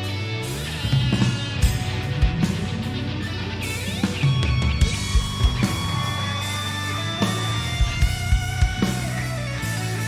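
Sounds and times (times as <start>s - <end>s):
bass guitar: 0.0s - 10.0s
drums: 0.0s - 10.0s
electric guitar lead: 0.0s - 10.0s.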